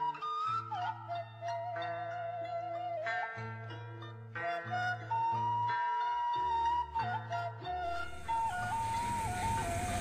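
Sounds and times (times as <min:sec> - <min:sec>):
slow melody of held notes: 0:07.7 - 0:10.0
low sustained bass: 0:07.9 - 0:10.0.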